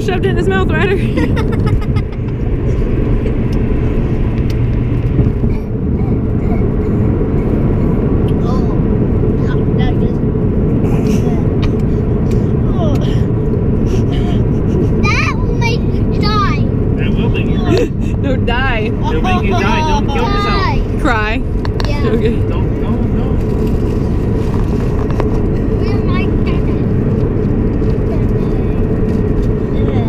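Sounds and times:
car cabin road rumble: 0:00.0 - 0:30.0.

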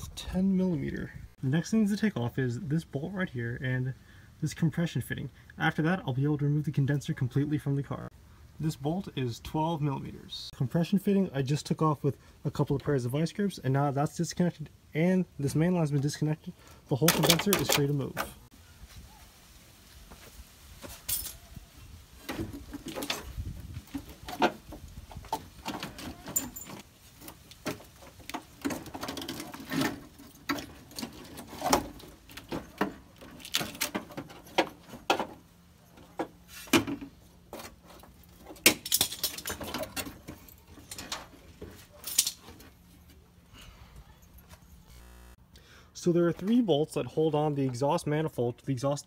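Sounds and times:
metal parts clicking and rattling: 0:25.6 - 0:35.0, 0:37.6 - 0:41.4, 0:42.0 - 0:42.6.

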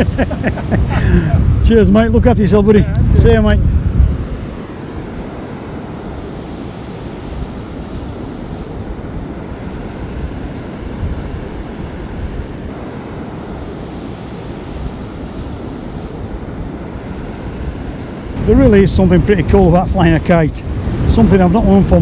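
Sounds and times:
breaking surf: 0:00.0 - 0:22.0
wind rumbling on microphone: 0:00.0 - 0:22.0.

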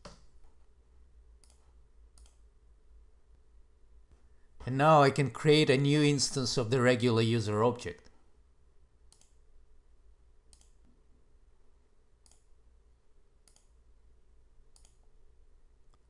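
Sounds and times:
low steady hum: 0:00.0 - 0:16.0
faint computer mouse clicks: 0:01.4 - 0:02.4, 0:09.1 - 0:09.4, 0:10.5 - 0:11.0, 0:12.2 - 0:12.5, 0:13.4 - 0:13.8, 0:14.7 - 0:15.0.

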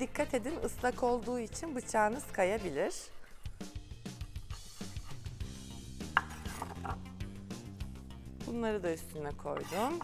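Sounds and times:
background music with drums: 0:03.5 - 0:10.0
knife chopping on wooden board: 0:06.1 - 0:07.0, 0:09.6 - 0:10.0.

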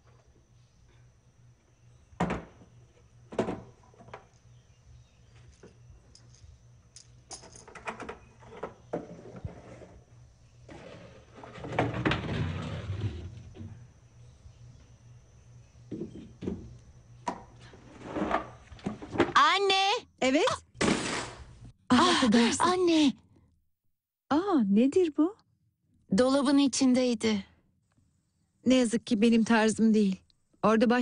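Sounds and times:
faint steady hum: 0:00.0 - 0:20.8
rustling scrape: 0:09.0 - 0:10.1.

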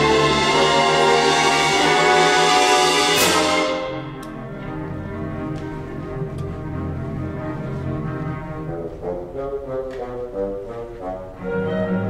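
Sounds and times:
orchestra playing: 0:00.0 - 0:12.0.

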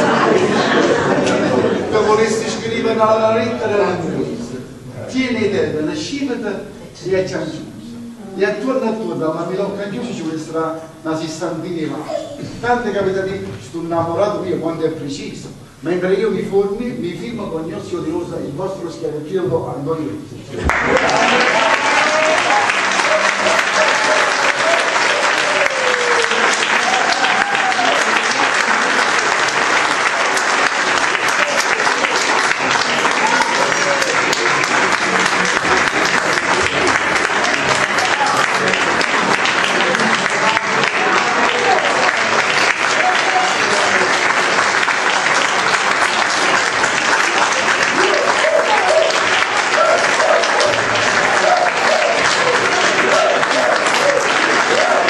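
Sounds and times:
audience applauding: 0:00.0 - 0:03.0, 0:20.5 - 0:55.0.

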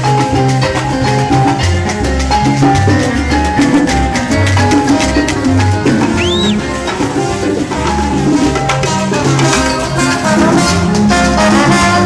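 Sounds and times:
live salsa band playing: 0:00.0 - 0:12.0
whistle rising and falling: 0:06.0 - 0:06.8.

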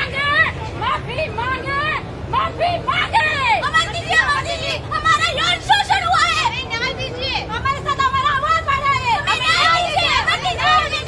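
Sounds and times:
crowd murmur: 0:00.0 - 0:11.0.

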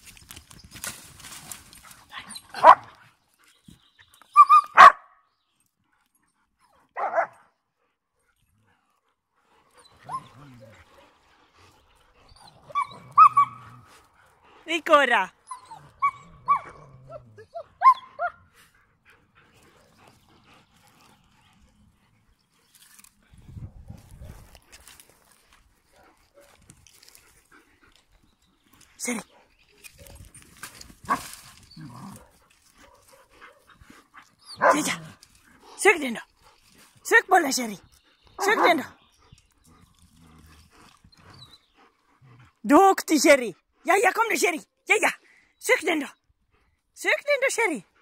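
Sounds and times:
dog yipping: 0:02.3 - 0:02.9, 0:04.3 - 0:05.1, 0:12.7 - 0:13.6, 0:15.5 - 0:18.4, 0:34.4 - 0:34.8
dog growling low: 0:10.0 - 0:14.1, 0:15.7 - 0:17.6, 0:31.7 - 0:32.4, 0:39.6 - 0:42.6.

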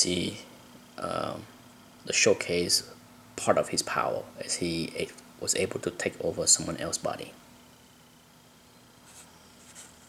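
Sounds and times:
hand brushing paper page: 0:09.0 - 0:10.0.

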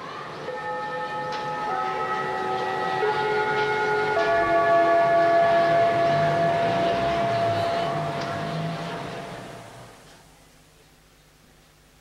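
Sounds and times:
electric guitars sustained notes: 0:00.4 - 0:10.0.

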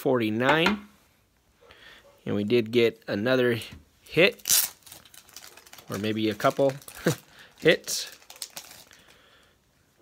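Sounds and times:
plastic card sleeve rustling: 0:04.4 - 0:09.2.

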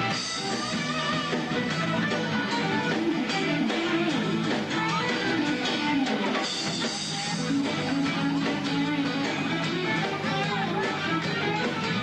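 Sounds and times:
bass and drums: 0:00.0 - 0:12.0
electric guitar lead line: 0:00.0 - 0:12.0.

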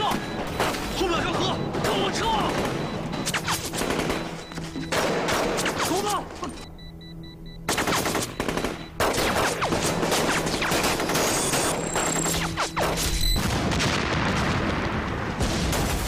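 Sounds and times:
rapid rifle and machine-gun fire: 0:00.0 - 0:06.1, 0:07.7 - 0:16.0
background music: 0:00.0 - 0:13.0.

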